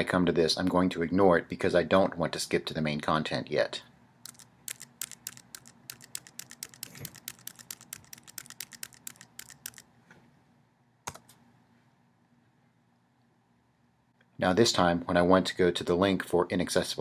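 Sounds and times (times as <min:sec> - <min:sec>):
computer keyboard keystrokes: 0:04.2 - 0:09.8, 0:11.1 - 0:11.4.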